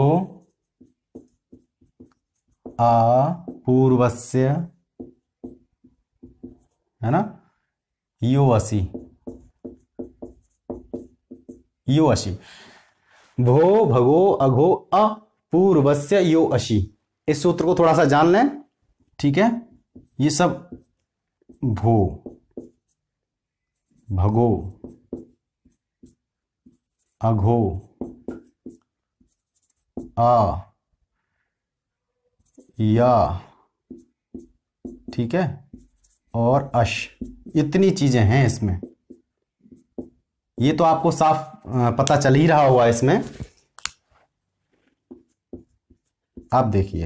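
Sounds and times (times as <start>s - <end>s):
marker squeaking on whiteboard: 0.2s - 4.2s, 4.8s - 7.0s, 8.7s - 11.9s, 17.5s - 30.3s, 32.0s - 47.0s.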